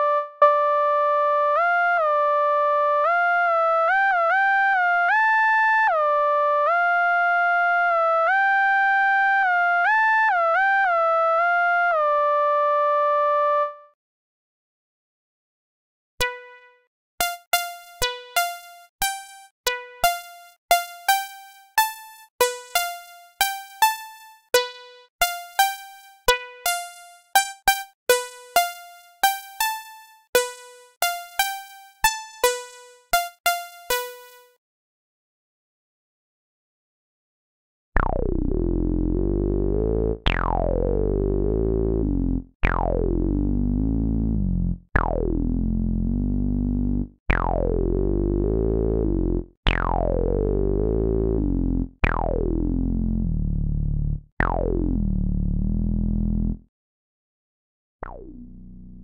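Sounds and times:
buzzy synthesizer lead line: 42.8 - 56.6.

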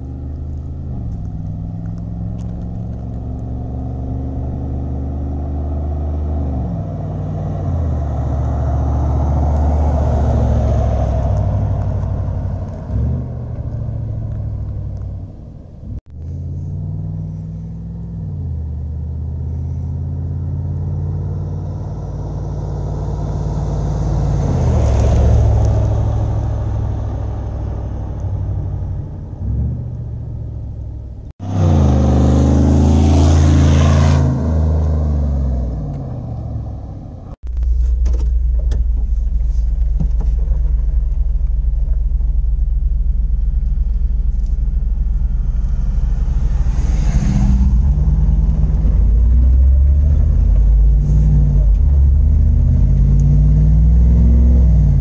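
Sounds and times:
vehicle accelerating past: 0.0 - 15.0, 16.2 - 30.7, 31.4 - 37.4, 44.9 - 55.0.

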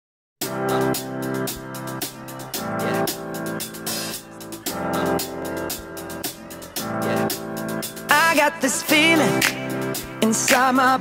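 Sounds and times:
upbeat electronic pop music: 0.4 - 11.0.

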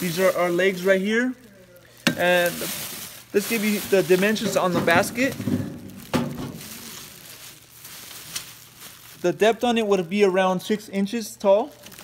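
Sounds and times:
plastic bag rustling: 0.0 - 10.3, 11.6 - 12.0.

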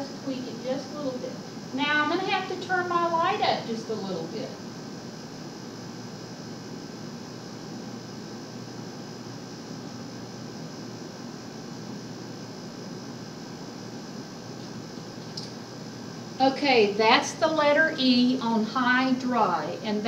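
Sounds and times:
fan running: 0.0 - 20.0.

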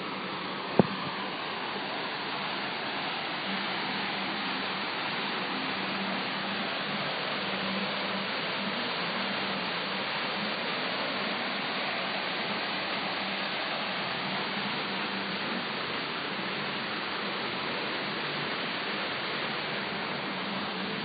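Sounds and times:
waterfall rushing: 0.0 - 21.0.

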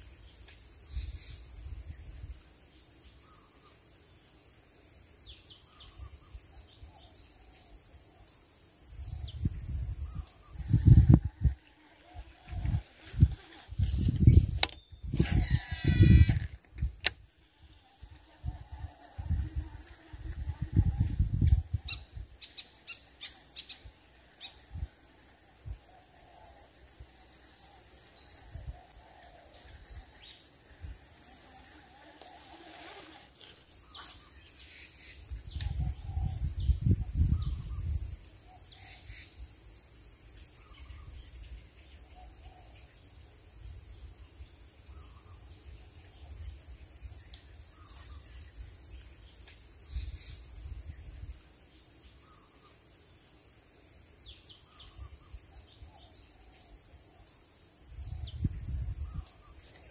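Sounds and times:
insects trilling: 0.0 - 59.9.

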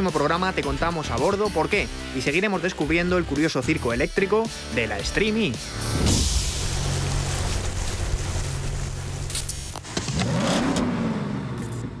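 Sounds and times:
short hissing sweep: 5.5 - 9.8
car engine revving: 5.6 - 12.0.

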